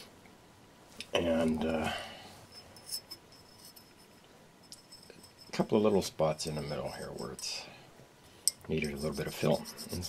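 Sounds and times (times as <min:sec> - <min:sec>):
file clicking and scraping: 0:06.4 - 0:07.6, 0:08.7 - 0:10.0.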